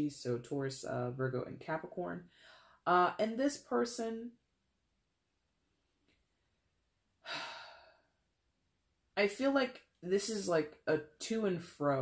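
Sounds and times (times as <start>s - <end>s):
person sighing: 7.2s - 8.1s.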